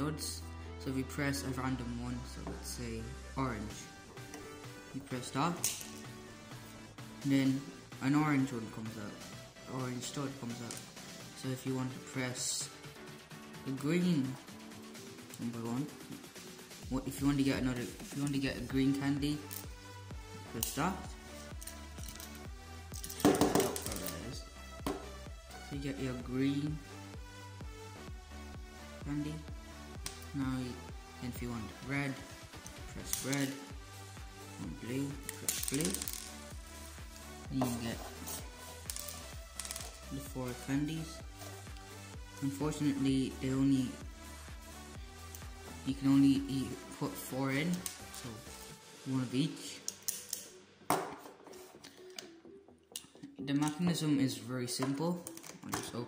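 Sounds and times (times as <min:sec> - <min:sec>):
background music: 0:00.0 - 0:56.0
small plastic clicks clattering: 0:55.2 - 0:55.9.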